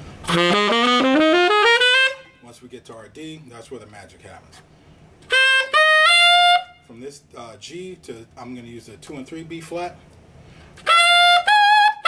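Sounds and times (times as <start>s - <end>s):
tenor saxophone rising notes: 0.2s - 2.5s, 5.2s - 6.9s, 10.8s - 12.0s.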